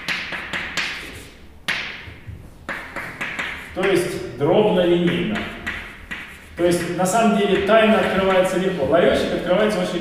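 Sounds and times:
chalk scratching on blackboard: 0:00.0 - 0:01.4, 0:02.6 - 0:10.0
chalk tapping on blackboard: 0:00.0 - 0:10.0.

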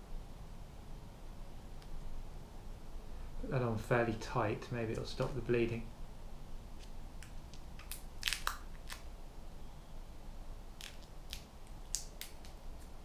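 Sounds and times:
adhesive plaster crinkling: 0:06.8 - 0:09.1.

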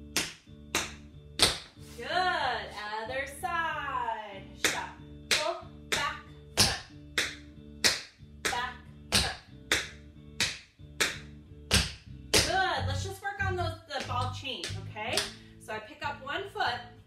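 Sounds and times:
background music: 0:00.0 - 0:17.0.

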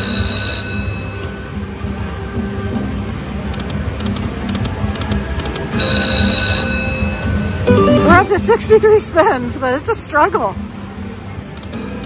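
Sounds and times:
slot machine electronic music: 0:03.4 - 0:08.7.

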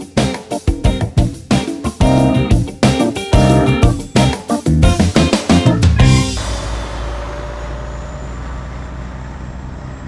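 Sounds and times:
truck engine drone: 0:01.0 - 0:10.0
road noise: 0:05.8 - 0:10.0.

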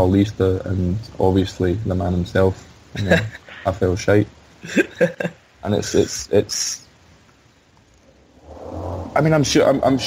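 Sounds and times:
faint line hiss: 0:00.0 - 0:10.0.

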